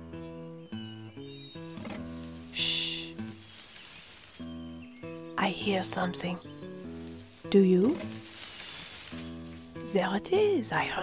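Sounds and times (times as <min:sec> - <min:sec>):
gentle background music: 0:00.0 - 0:11.0
rustling in undergrowth: 0:01.3 - 0:11.0
tortoise hissing: 0:02.0 - 0:04.7.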